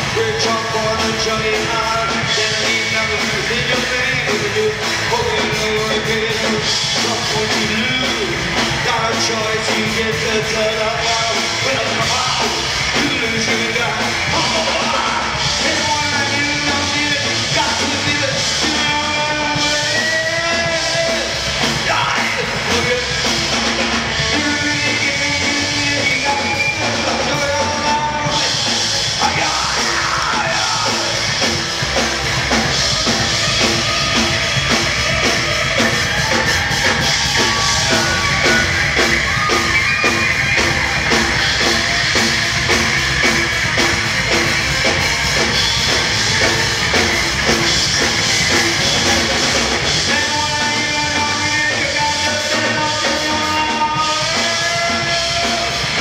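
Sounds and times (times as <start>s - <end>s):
punk rock band playing live: 0.0s - 56.0s.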